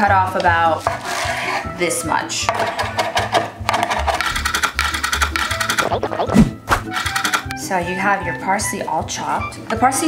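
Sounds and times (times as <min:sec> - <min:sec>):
background music with beat: 0:03.6 - 0:07.6.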